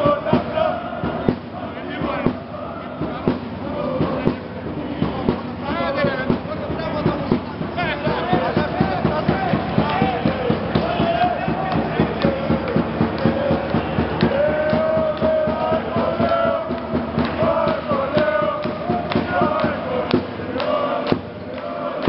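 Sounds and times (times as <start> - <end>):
steady drum beat: 0.0 - 22.0
supporters chanting in unison: 0.0 - 22.0.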